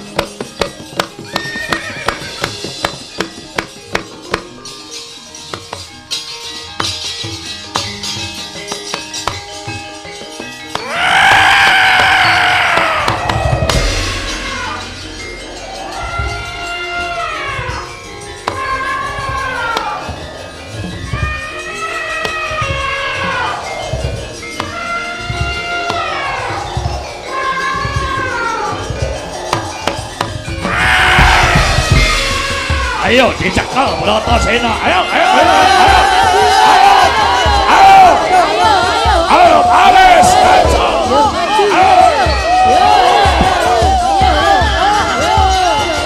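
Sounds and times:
dense ringing percussion music: 0.0s - 46.0s
gamelan ensemble: 0.0s - 46.0s
elephant-like trumpeting call: 10.8s - 20.2s, 29.6s - 38.3s
sharp strike: 13.7s - 16.6s.

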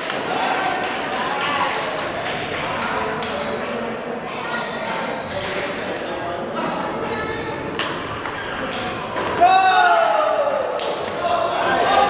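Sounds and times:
murmur of voices: 0.0s - 12.0s
table tennis balls clicking: 7.4s - 9.4s.

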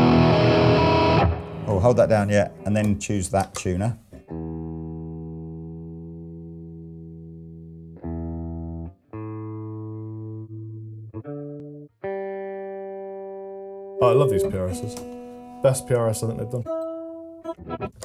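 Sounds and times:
electric guitar single notes ringing: 11.2s - 17.9s.

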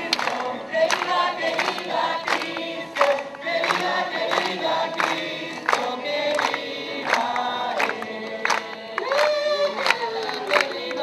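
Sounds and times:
crowd singing together: 0.0s - 11.0s
hand clapping on the beat: 0.0s - 11.0s.

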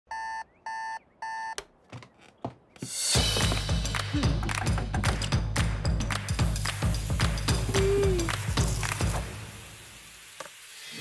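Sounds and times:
electronic alarm beeping: 0.1s - 1.6s.

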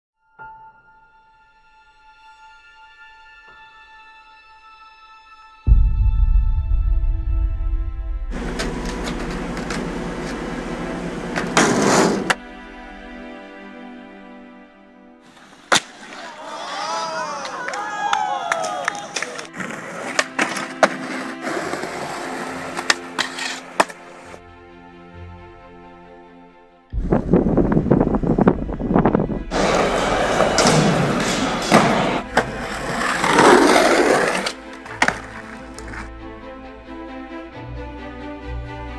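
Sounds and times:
ambient music: 0.2s - 38.9s
skateboard clacks: 8.4s - 12.4s, 29.5s - 36.1s
skateboard wheels rolling on pavement: 8.4s - 12.4s, 18.5s - 24.4s, 29.5s - 36.1s.

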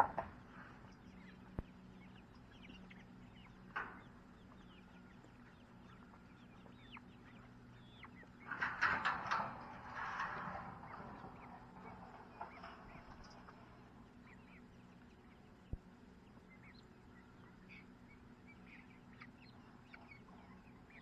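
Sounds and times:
chicks cheeping and clucking: 0.0s - 21.0s.

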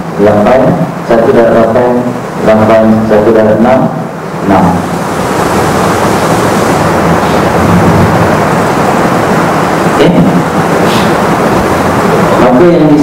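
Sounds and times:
loud rushing noise: 0.0s - 13.0s.

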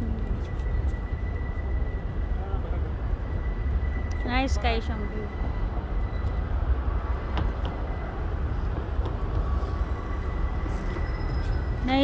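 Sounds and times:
city road traffic rumble: 0.0s - 12.0s.

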